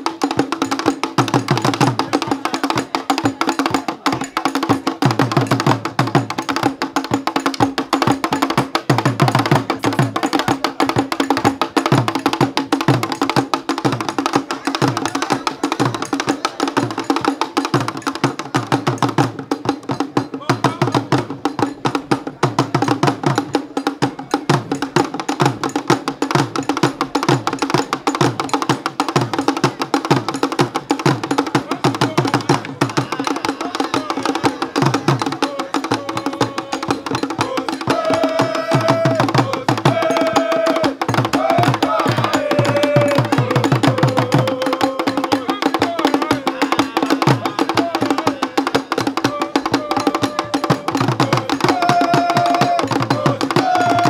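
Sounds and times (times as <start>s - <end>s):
drum ensemble percussion: 0.0s - 54.0s.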